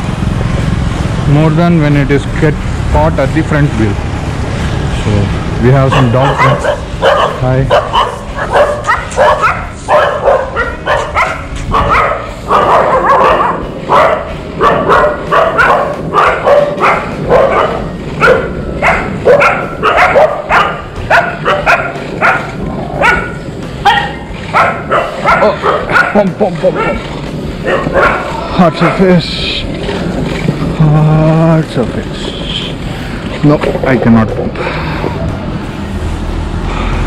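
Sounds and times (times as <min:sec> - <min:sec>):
longboard wheels rolling on asphalt: 0:00.0 - 0:37.0
dogs barking: 0:05.7 - 0:29.8.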